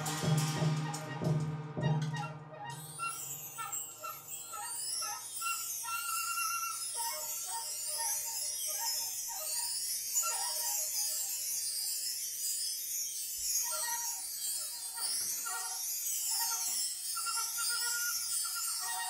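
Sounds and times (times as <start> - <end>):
metal percussion shimmer: 0.0 - 19.0.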